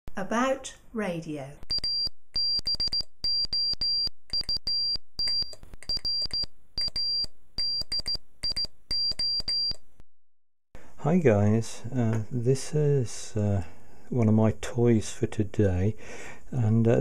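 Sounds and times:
morse code beeps: 1.7s - 9.8s.

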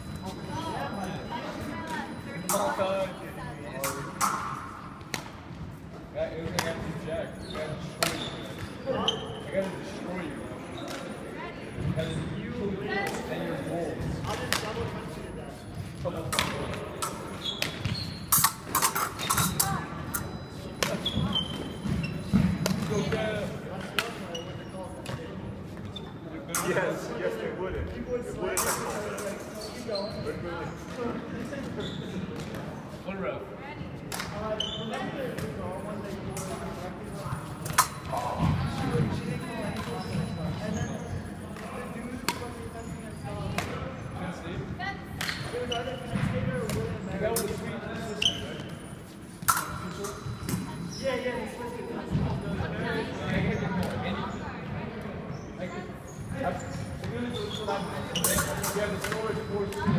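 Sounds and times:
fencing blades clacking: 3.8s - 5.3s, 16.3s - 21.0s, 37.5s - 38.2s, 49.4s - 50.7s, 58.2s - 59.4s
short high squeaks: 17.0s - 23.1s, 48.0s - 51.2s, 56.1s - 59.6s.

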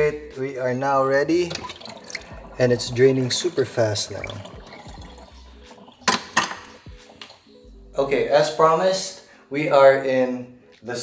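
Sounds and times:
water draining from sink: 1.4s - 7.5s.

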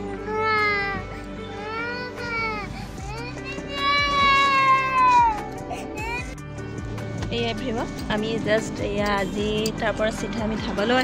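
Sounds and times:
music accompaniment: 0.0s - 11.0s.

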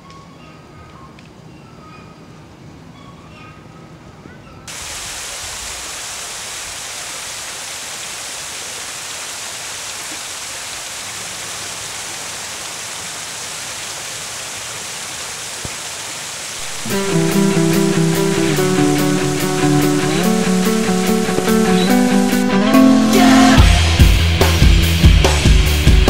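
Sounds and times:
steady rushing hiss: 4.7s - 26.0s
music: 16.6s - 26.0s
person shouting: 23.0s - 24.0s.

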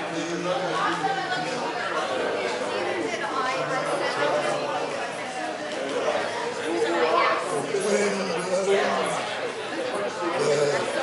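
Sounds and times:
indistinct voices chattering: 0.0s - 11.0s.

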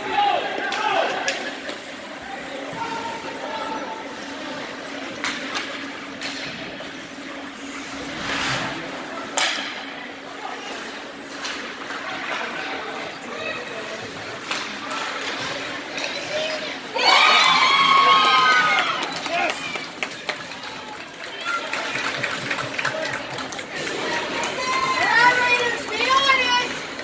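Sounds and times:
crowd voices: 0.0s - 27.0s
low rink hum: 0.0s - 27.0s
hockey sticks and puck clacking: 0.5s - 2.0s, 5.0s - 7.2s, 9.2s - 9.9s, 11.3s - 12.8s, 14.1s - 16.7s
spectators shouting: 16.9s - 19.4s.

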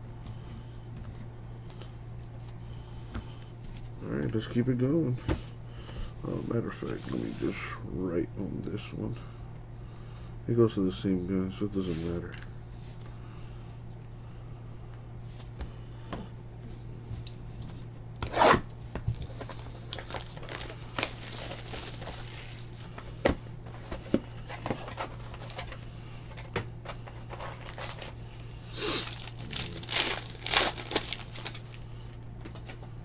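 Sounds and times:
wrapper ripping and crinkling: 19.9s - 22.7s, 27.4s - 28.2s, 28.8s - 31.8s
cardboard being torn: 28.9s - 31.6s.

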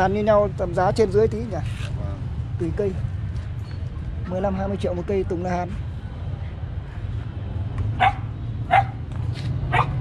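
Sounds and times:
dog barking: 8.0s - 9.0s, 9.7s - 10.0s.

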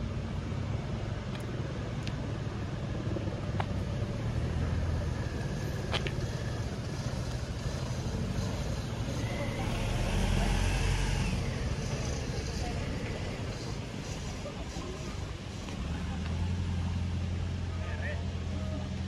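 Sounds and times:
outdoor background hum: 0.0s - 19.0s
car passing: 2.8s - 19.0s.

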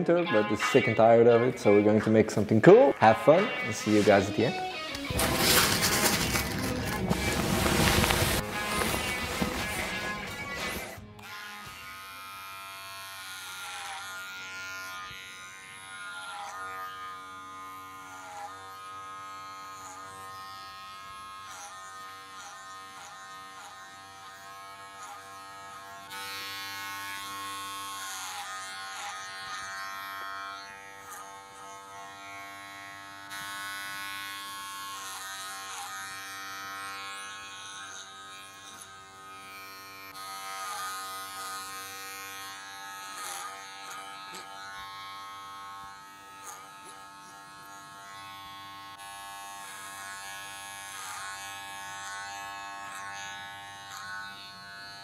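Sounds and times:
electric hair clippers buzzing: 0.0s - 55.0s.

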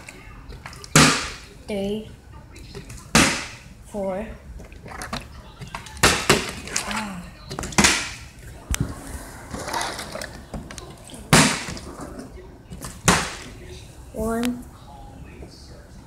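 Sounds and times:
plastic bottle clattering on tile: 4.7s - 8.3s.

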